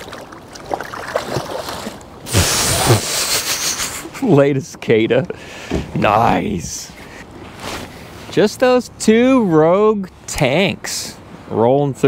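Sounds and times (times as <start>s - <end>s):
water sloshing: 0.0s - 2.8s
water splashing: 0.0s - 3.6s.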